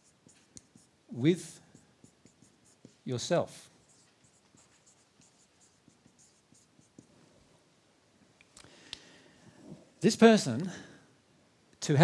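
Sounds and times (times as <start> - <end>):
marker squeaking on whiteboard: 0.0 - 0.9, 1.7 - 7.1.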